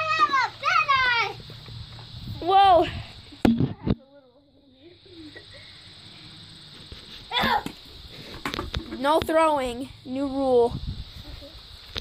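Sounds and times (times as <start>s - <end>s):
child shouting: 0.0s - 1.4s, 7.3s - 7.8s.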